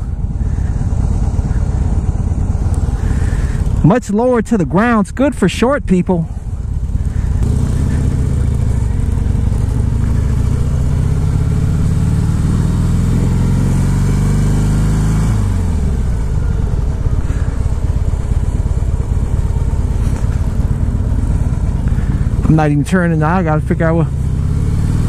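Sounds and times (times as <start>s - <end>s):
motorcycle engine accelerating: 0.0s - 25.0s.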